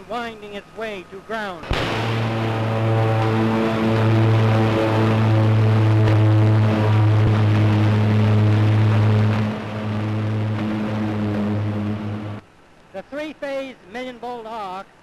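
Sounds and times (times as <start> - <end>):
loud mains hum: 0.0 - 12.9
electric arc buzzing: 1.6 - 12.4
electric crackle: 1.6 - 12.4.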